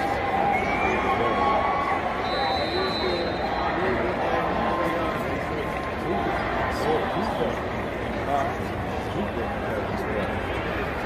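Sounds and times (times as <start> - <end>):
crowd babble: 0.0 - 11.0
short high whistle: 2.2 - 3.8.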